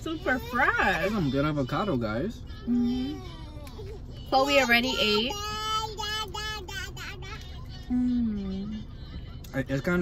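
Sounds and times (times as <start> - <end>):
person humming with full mouth: 7.9 - 8.7.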